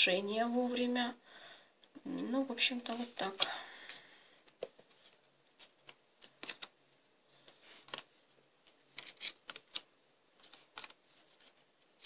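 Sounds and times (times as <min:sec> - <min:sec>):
cards being shuffled: 0:04.5 - 0:06.8, 0:07.4 - 0:12.0.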